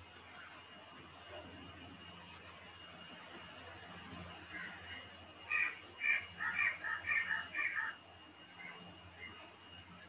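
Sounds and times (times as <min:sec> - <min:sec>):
bird calling: 0:04.5 - 0:08.0.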